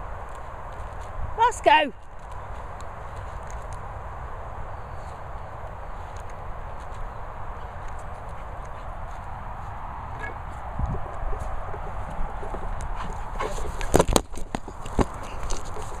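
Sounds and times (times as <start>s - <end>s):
wind rumbling on microphone: 0.0s - 16.0s.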